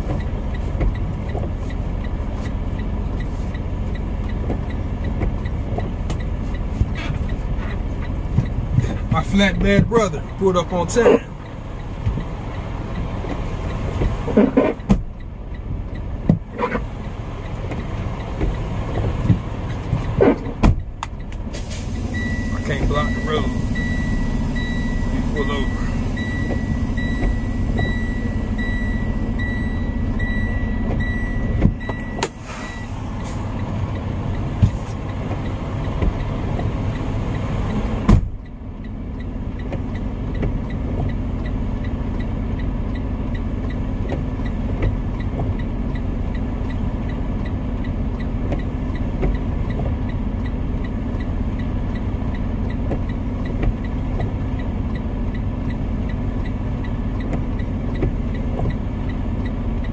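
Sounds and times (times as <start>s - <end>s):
diesel truck engine idling: 0.0s - 14.3s, 15.0s - 44.4s
high beep: 22.1s - 33.4s
sharp thump: 38.1s - 38.4s.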